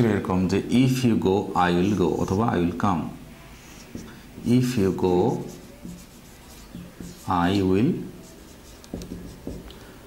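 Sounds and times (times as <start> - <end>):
marker writing on whiteboard: 3.5 - 10.0.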